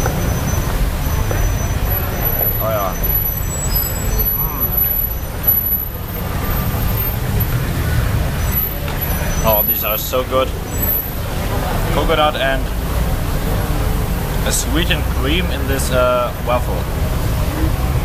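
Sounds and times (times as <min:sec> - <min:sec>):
city traffic rumble: 0:00.0 - 0:18.0
faint voices: 0:00.0 - 0:18.0.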